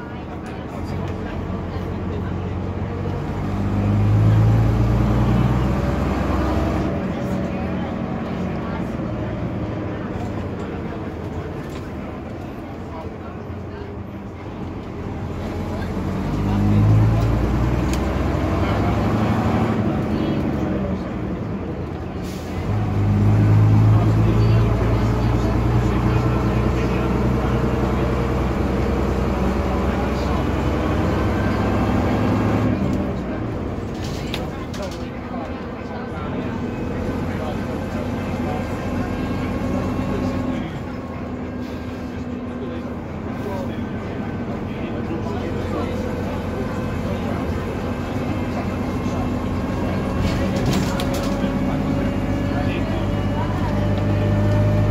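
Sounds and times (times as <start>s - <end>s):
bus diesel engine accelerating: 0.0s - 54.9s.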